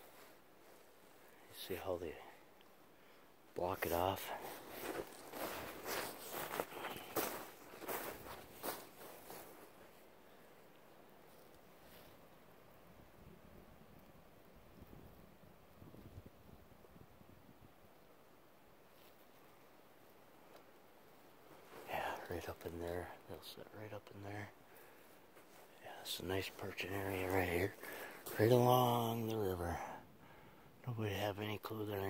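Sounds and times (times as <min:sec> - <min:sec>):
faint rustles: 0:00.0 - 0:12.8, 0:18.8 - 0:30.4
footsteps crunching in snow: 0:03.8 - 0:10.0, 0:24.8 - 0:25.8, 0:26.5 - 0:29.0
brushing through twigs: 0:04.2 - 0:09.6.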